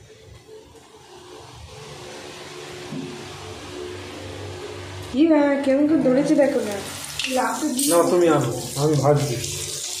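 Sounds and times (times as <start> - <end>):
hot oil frying: 0.0 - 10.0.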